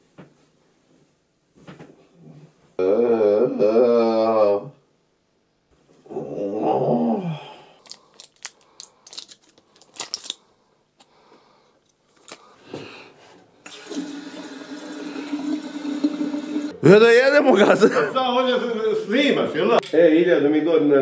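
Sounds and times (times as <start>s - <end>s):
tap running into washbasin: 13.6s - 16.7s.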